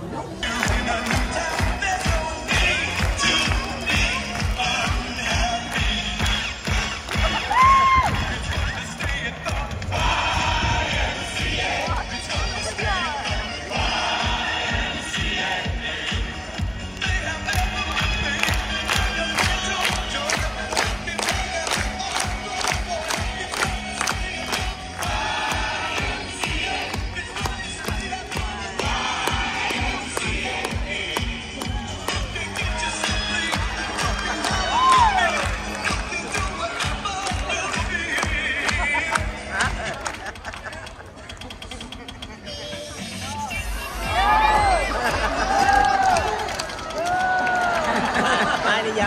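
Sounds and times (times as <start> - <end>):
crowd noise: 0.0 - 49.0
music from speakers: 0.2 - 49.0
crowd clapping in time: 0.4 - 12.0, 16.6 - 41.6, 44.6 - 49.0.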